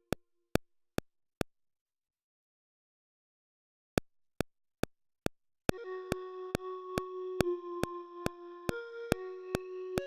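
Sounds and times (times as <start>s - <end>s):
metronome clicks: 4.4s - 10.0s
held synthesizer chord: 5.8s - 10.0s.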